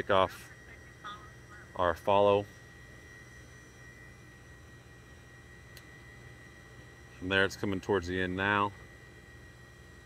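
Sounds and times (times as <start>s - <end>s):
faint electrical hum: 0.0s - 10.0s
high-pitched whine: 0.0s - 10.0s.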